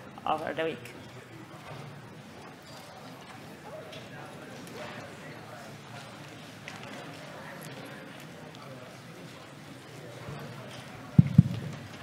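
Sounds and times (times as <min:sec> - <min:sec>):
faint indistinct voices in a hall: 0:00.0 - 0:12.0.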